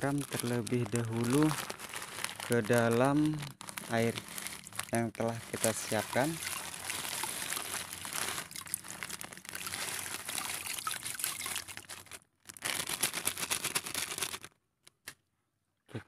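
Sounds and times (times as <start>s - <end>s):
salt pouring into water: 0.2s - 12.1s
water splashing: 3.8s - 12.1s.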